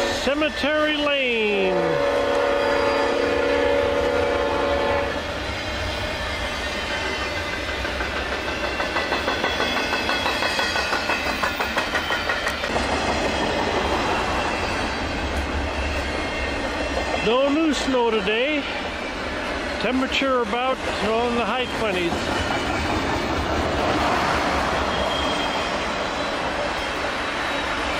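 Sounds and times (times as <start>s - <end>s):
locomotive horn: 0.0s - 0.3s, 1.5s - 5.2s
train cars clacking over rails: 0.0s - 27.9s.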